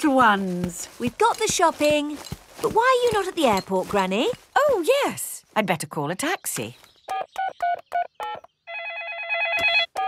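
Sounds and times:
trilling telephone ring: 0:08.7 - 0:10.0.

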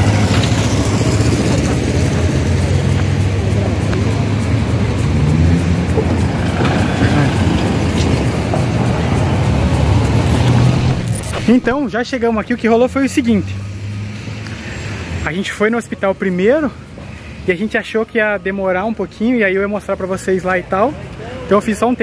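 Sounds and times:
motorcycle engine running: 0:00.0 - 0:11.5
car engine running: 0:00.0 - 0:11.8.

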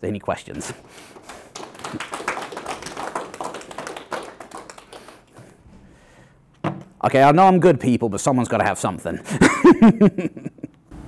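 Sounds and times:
audience applauding: 0:00.8 - 0:05.3.

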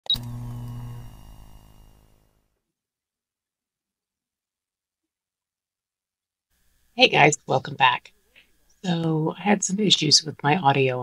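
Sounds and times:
low humming tone: 0:00.1 - 0:02.4.

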